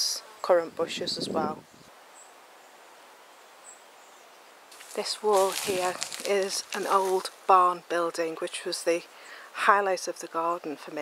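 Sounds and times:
soft steady hiss: 0:00.0 - 0:11.0.

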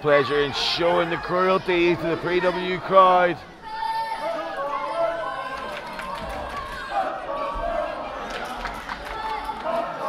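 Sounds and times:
crowd chattering and calling out: 0:00.0 - 0:10.0.

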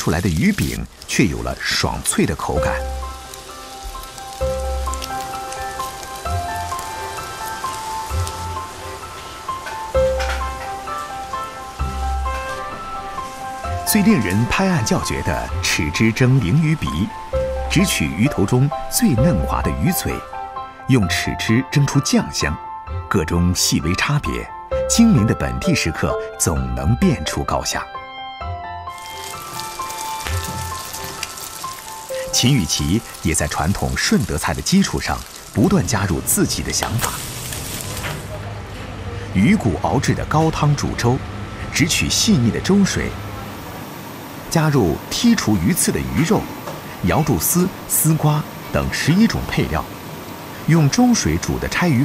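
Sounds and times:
food sizzling in oil: 0:00.0 - 0:17.3, 0:28.9 - 0:38.3
background music: 0:00.0 - 0:52.0.

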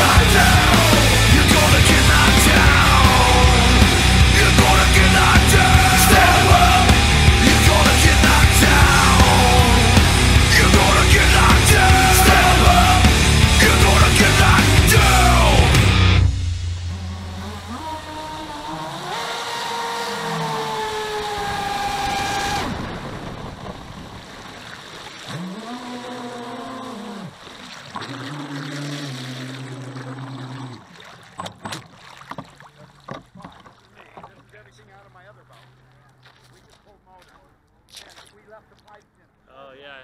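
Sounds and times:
light water splashes: 0:22.7 - 0:39.1.

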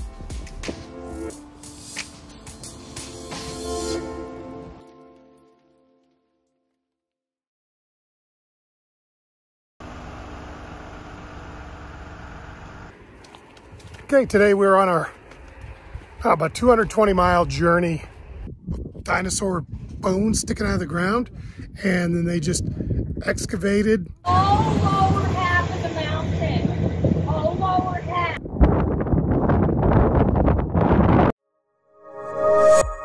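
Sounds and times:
vehicle engine humming: 0:09.8 - 0:17.2, 0:24.3 - 0:28.4
low outdoor rumble: 0:24.2 - 0:28.4
indistinct voices talking: 0:24.3 - 0:28.4.

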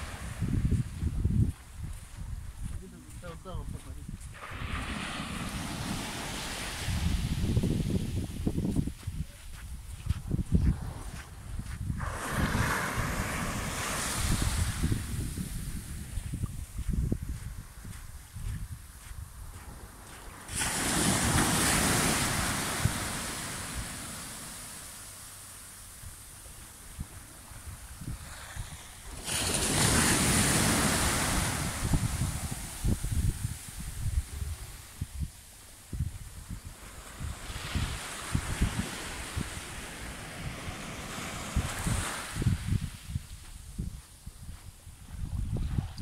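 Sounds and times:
wave breaking on sandy shore: 0:00.0 - 0:00.9, 0:04.3 - 0:08.6, 0:12.0 - 0:16.3, 0:20.3 - 0:25.4, 0:27.0 - 0:35.1, 0:36.8 - 0:42.9
wind buffeting microphone: 0:00.0 - 0:24.3, 0:25.9 - 0:46.0.

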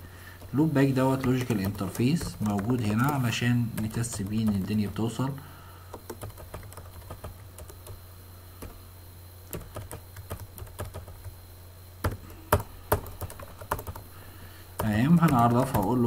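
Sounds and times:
low steady hum: 0:00.0 - 0:16.0
computer keyboard typing: 0:00.4 - 0:08.0, 0:08.6 - 0:08.8, 0:09.5 - 0:11.4, 0:12.0 - 0:14.1, 0:14.8 - 0:16.0.

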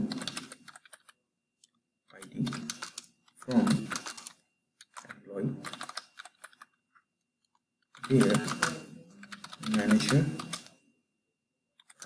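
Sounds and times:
typing on computer keyboard: 0:00.0 - 0:01.2, 0:02.1 - 0:06.8, 0:07.4 - 0:10.8, 0:11.8 - 0:12.0.

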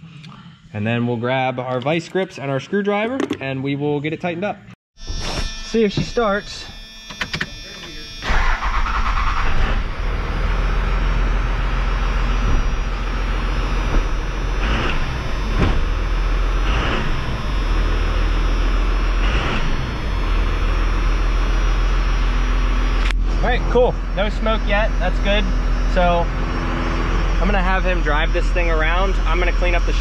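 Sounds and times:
diesel engine running: 0:07.6 - 0:30.0.

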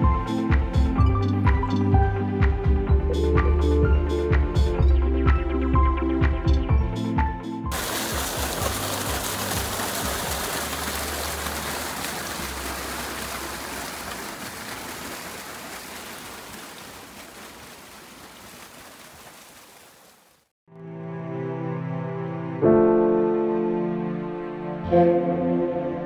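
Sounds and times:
water gushing into a pool: 0:07.7 - 0:20.5.

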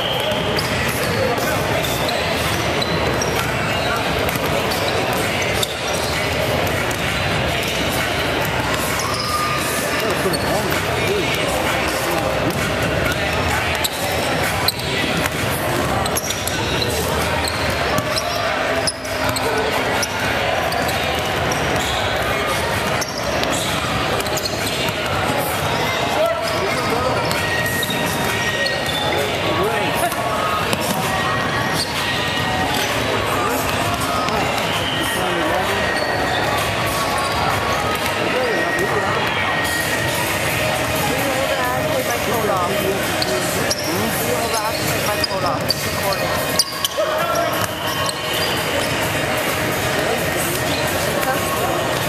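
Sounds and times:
chatter of people: 0:00.0 - 0:52.0.

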